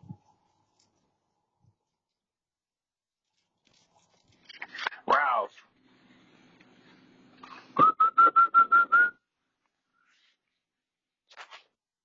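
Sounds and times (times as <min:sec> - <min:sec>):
short whistled notes: 0:07.8 - 0:09.2.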